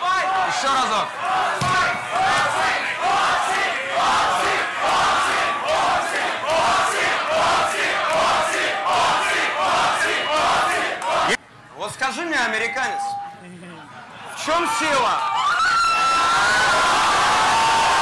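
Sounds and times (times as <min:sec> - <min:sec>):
crowd chanting: 0:00.0 - 0:11.4.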